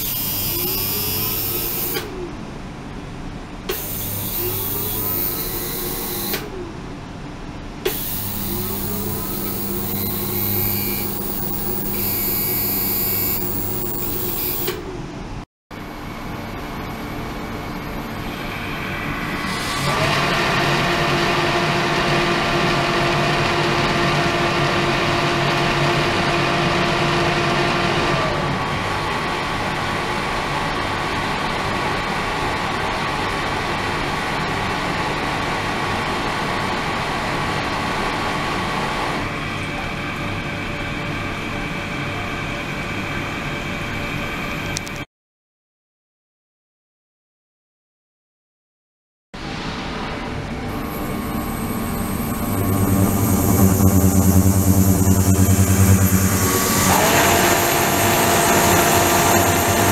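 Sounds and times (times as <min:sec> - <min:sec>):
mechanical hum with tones: 0:00.0 - 0:45.1, 0:49.4 - 0:59.9.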